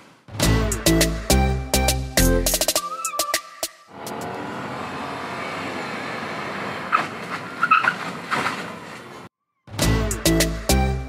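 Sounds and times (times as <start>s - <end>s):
car driving and braking: 2.8s - 9.3s.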